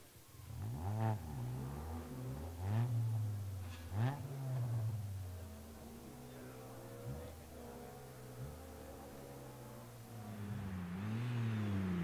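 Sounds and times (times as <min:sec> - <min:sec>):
car engine revving: 0:00.3 - 0:12.0.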